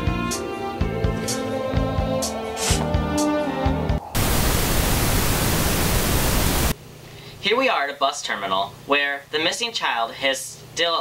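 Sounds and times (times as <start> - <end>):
music: 0.0 - 4.1
loud static hiss: 4.1 - 7.2.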